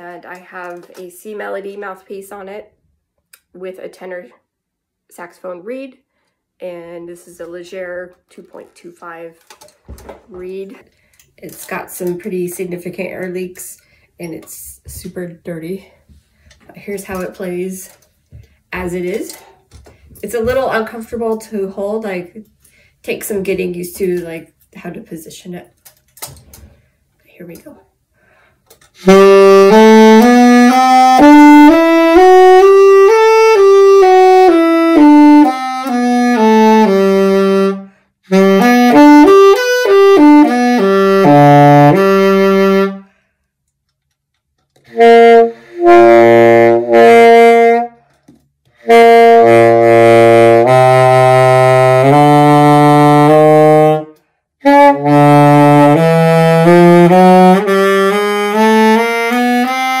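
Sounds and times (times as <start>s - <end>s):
saxophone melody: 28.9s - 43.2s, 44.8s - 60.0s.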